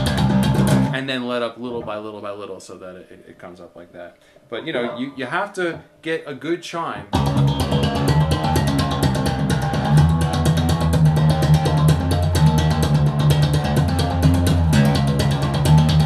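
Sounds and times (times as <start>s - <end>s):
electric bass fingerstyle run: 0.0s - 1.0s, 7.1s - 16.0s.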